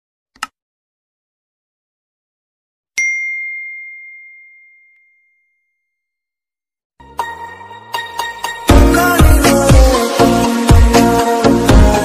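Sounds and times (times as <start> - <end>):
bell-like ding: 3.0 - 6.0.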